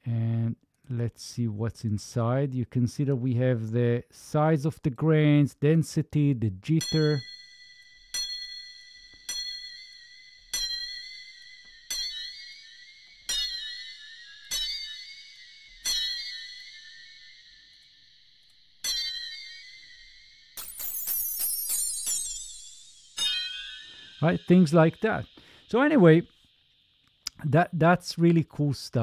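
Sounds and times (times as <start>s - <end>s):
struck bell-like metallic notes: 6.7s - 28.4s.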